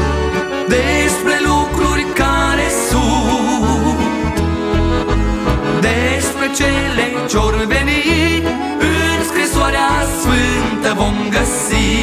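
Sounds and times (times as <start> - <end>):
accordion melody: 0.0 - 12.0
backing band with bass: 0.0 - 12.0.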